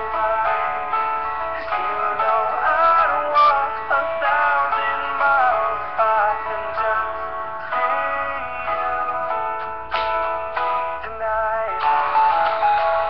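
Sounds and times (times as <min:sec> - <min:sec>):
song with sung vocals: 0:00.0 - 0:13.0.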